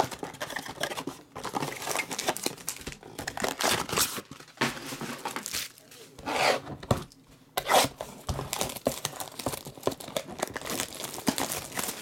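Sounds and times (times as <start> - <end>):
plastic shrink wrap crinkling and tearing: 0.0 - 6.1, 8.1 - 12.0.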